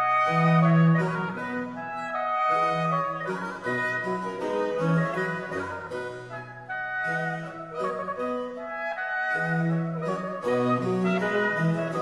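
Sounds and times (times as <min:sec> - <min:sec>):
wind instruments holding notes: 0:00.0 - 0:12.0.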